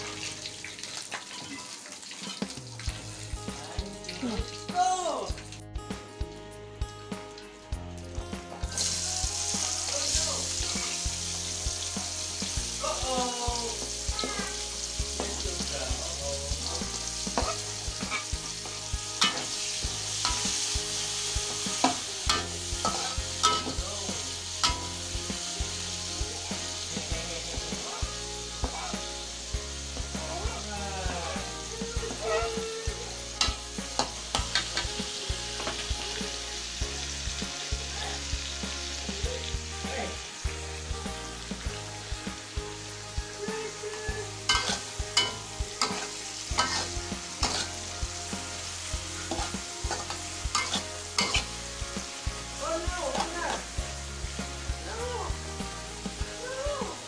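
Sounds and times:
food sizzling in a wok: 0.0 - 57.0
metal spatula scraping a pan: 16.9 - 18.6, 19.2 - 25.2, 33.3 - 34.9, 44.5 - 51.6.

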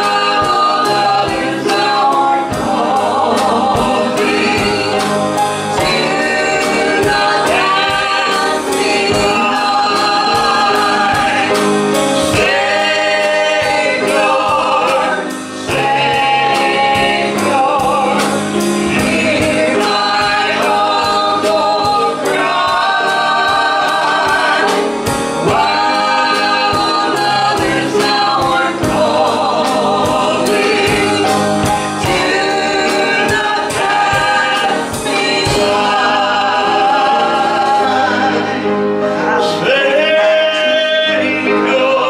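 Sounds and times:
drum kit steady beat: 0.0 - 38.7
band playing: 0.0 - 42.0
singers on microphones: 0.0 - 42.0.

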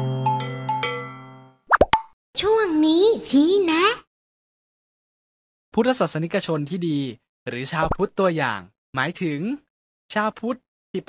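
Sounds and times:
rising cartoon pop effect: 1.7 - 2.1.

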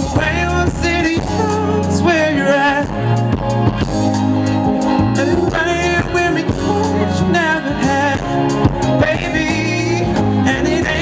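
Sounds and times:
live band music: 0.0 - 11.0.

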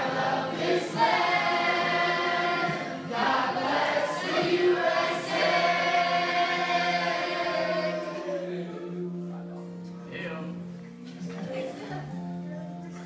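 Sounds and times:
group singing in unison: 0.0 - 9.2.

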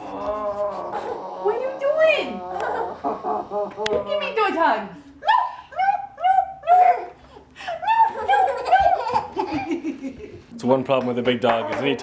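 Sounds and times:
baby laughing: 7.8 - 10.1.

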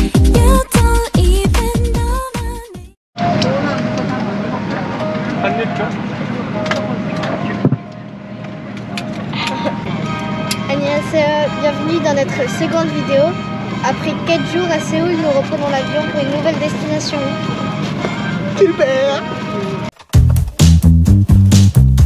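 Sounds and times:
airliner cabin hum: 3.2 - 19.8
people talking and laughing: 3.3 - 19.8.

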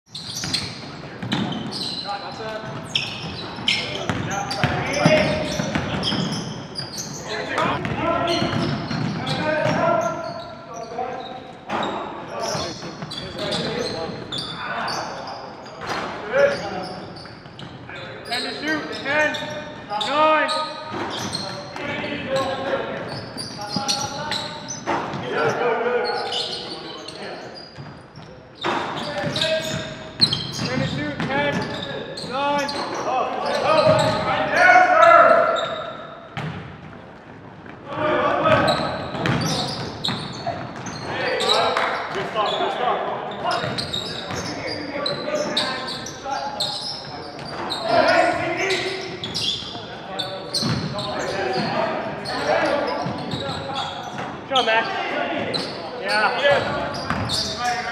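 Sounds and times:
players' indistinct voices: 0.1 - 57.9
basketball bouncing on hardwood: 38.5 - 39.4.

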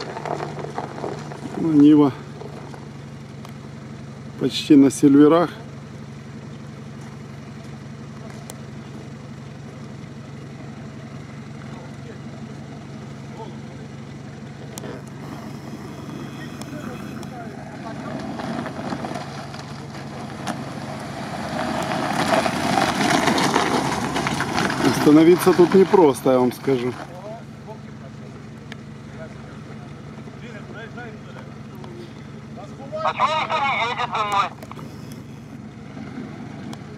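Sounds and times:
car engine running at low revs: 0.0 - 36.9.

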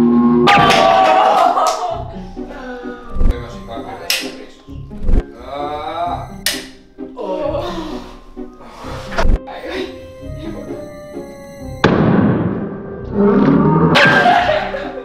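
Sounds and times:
background music: 0.4 - 15.0
wavering voice: 7.1 - 8.2, 9.5 - 11.8.

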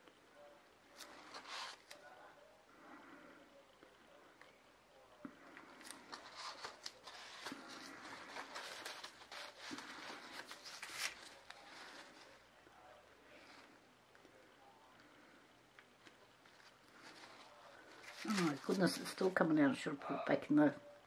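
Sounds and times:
paper towel crinkling: 5.6 - 12.5, 16.4 - 19.4.

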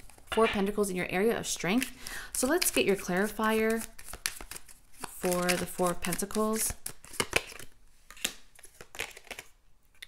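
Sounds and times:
cards shuffling and snapping: 1.8 - 10.0.

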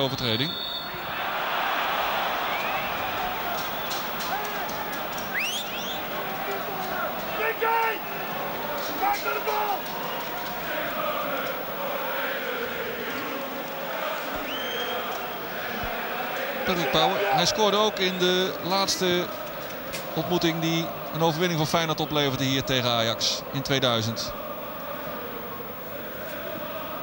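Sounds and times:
whistles: 0.2 - 7.4, 14.4 - 15.2
crowd shouting: 0.8 - 27.0.

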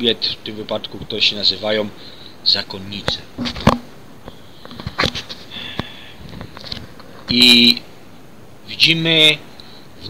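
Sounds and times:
man breathing in through nose: 2.0 - 2.4, 5.5 - 6.4.

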